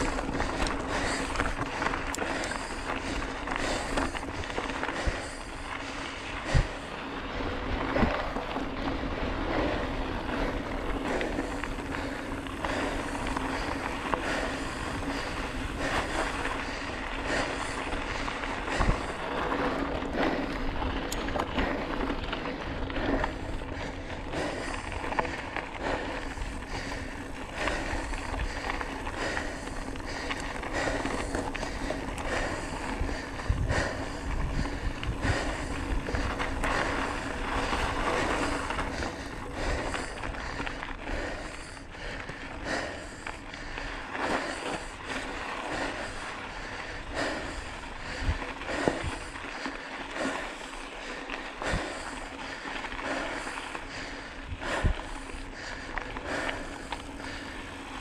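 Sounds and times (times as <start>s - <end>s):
wind rumble on microphone: 0.0s - 50.4s
bike rattling over bumps: 0.0s - 58.0s
bike tyres crunching over gravel: 0.0s - 58.0s.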